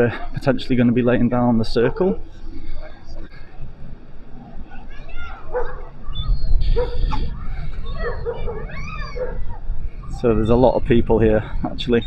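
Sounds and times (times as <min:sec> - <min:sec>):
wind rumbling on microphone: 0:01.6 - 0:12.0
dog barking and yipping: 0:04.7 - 0:07.2, 0:07.9 - 0:09.6.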